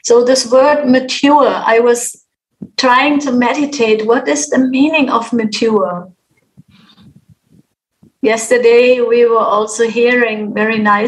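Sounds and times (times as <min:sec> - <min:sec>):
person speaking: 0:02.6 - 0:09.1
soft hiss: 0:06.3 - 0:08.3.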